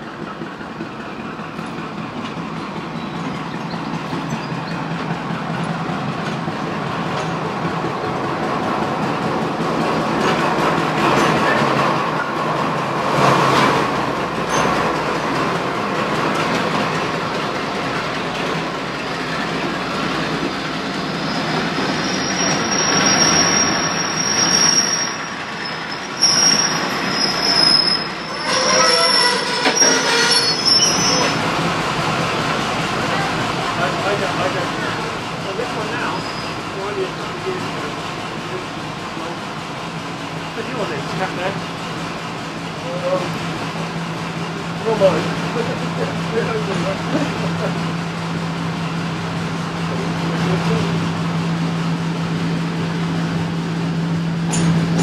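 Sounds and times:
train coaches rumbling past: 0.0s - 55.0s
metallic wheel squeal: 21.1s - 31.4s, 36.1s - 36.6s.

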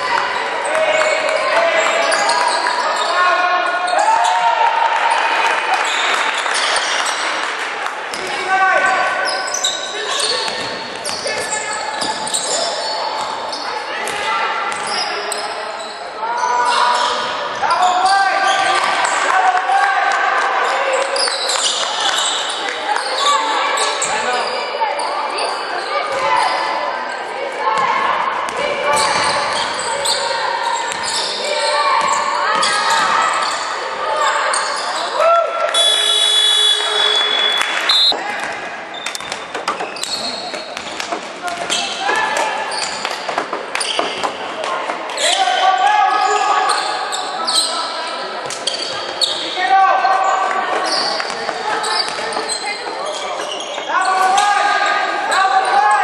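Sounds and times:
sneakers squeaking on floor: 0.0s - 4.4s, 5.8s - 7.3s, 8.9s - 19.2s, 20.6s - 27.2s, 27.8s - 55.8s
basketball bouncing on court: 10.4s - 12.3s
referee's whistle: 35.7s - 38.2s.

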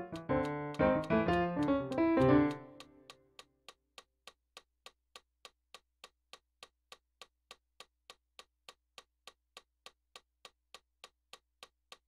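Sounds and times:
metronome clicking: 0.0s - 4.7s.

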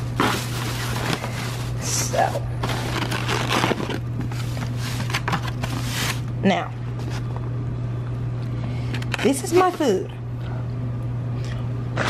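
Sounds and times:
plastic bag crinkling: 0.0s - 6.3s
steady low hum: 0.0s - 12.0s
foam takeout box handled: 2.6s - 6.2s.

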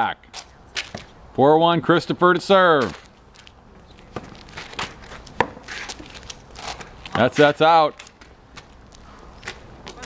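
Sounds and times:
ball bouncing on asphalt: 0.8s - 1.1s, 2.8s - 7.2s.

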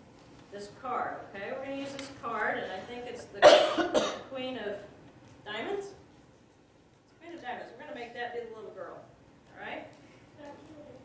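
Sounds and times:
person coughing: 3.4s - 4.3s.

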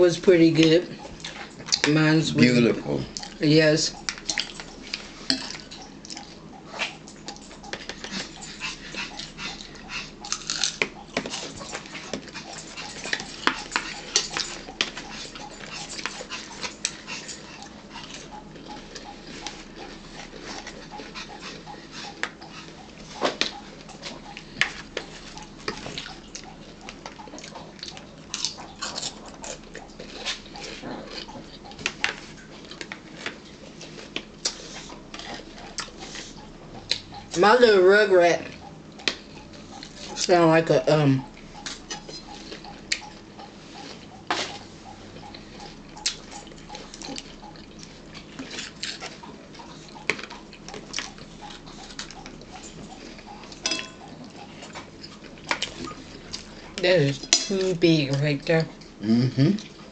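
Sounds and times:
crunching and chewing celery: 0.6s - 37.4s, 41.2s - 57.3s.

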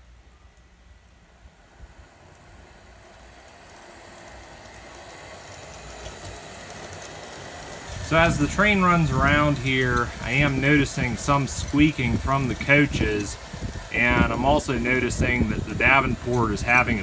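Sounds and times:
model train running on track: 0.0s - 17.0s.

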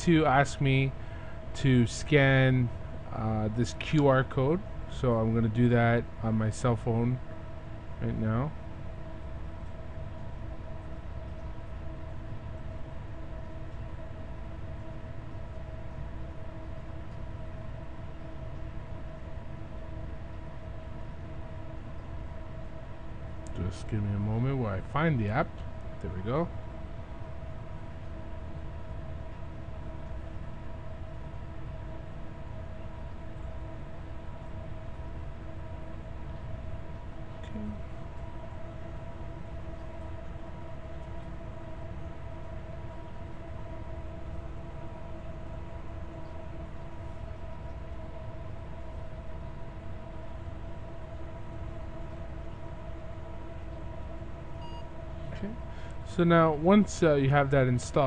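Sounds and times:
faint steady whine: 0.0s - 58.0s.

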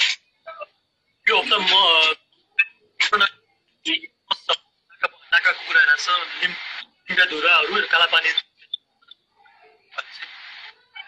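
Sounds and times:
man talking: 1.3s - 2.2s, 3.0s - 3.3s, 3.9s - 8.6s, 10.0s - 10.3s.

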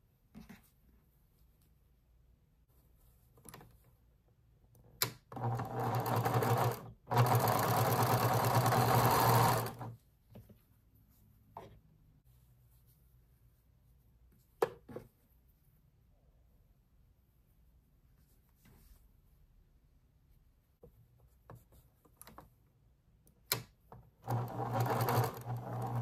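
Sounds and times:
sewing machine stitching: 5.0s - 10.0s, 23.6s - 26.0s.

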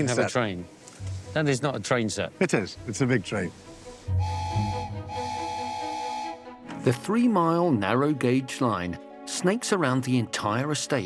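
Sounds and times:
locomotive whistle: 4.1s - 6.6s.

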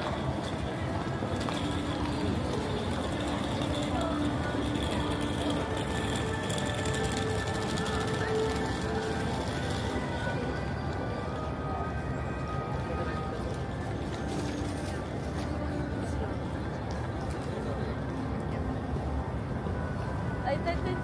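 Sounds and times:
music with long notes: 0.0s - 17.4s
many people talking: 0.0s - 21.0s
traffic noise: 0.0s - 21.0s.

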